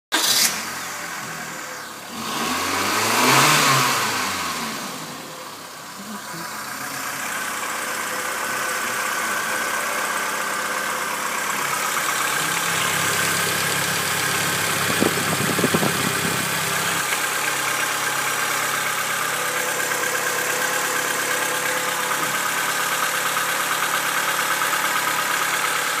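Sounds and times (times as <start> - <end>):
car engine idling: 0.1 - 26.0.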